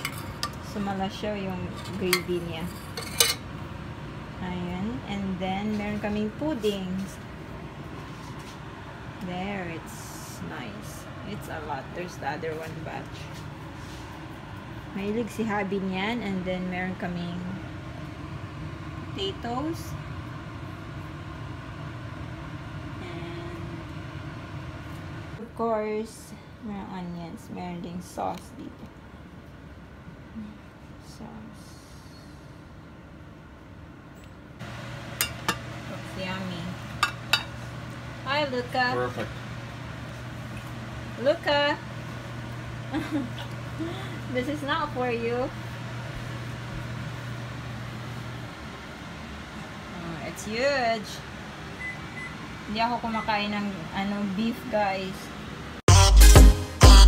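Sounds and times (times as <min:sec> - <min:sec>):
low hum and rumble: 0:00.0 - 0:55.9.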